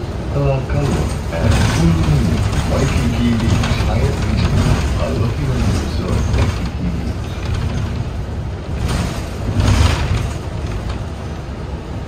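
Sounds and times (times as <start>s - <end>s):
bus engine and road rumble: 0.0s - 12.0s.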